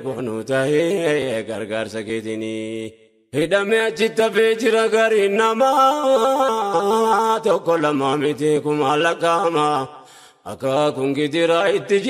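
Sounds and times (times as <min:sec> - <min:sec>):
man singing devotional song: 0:00.0 - 0:12.0.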